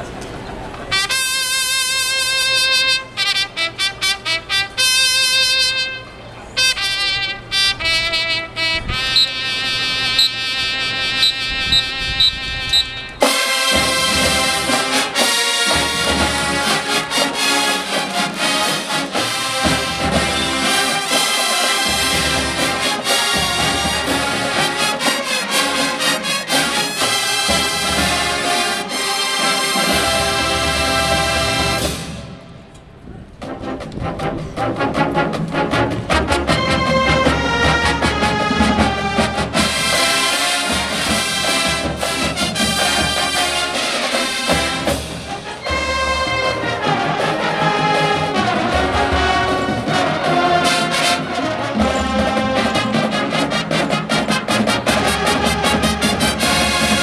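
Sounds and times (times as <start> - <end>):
marching band brass and drums: 0.8 - 57.0
solo trumpet playing: 0.9 - 32.2, 36.1 - 57.0.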